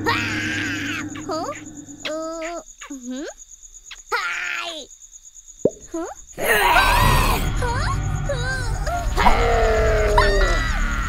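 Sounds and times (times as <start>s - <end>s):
crickets chirping: 0.0s - 11.0s
raspy growl: 6.4s - 7.6s.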